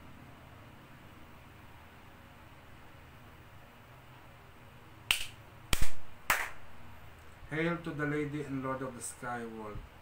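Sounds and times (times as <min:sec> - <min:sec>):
sharp hand claps: 0:05.1 - 0:06.6.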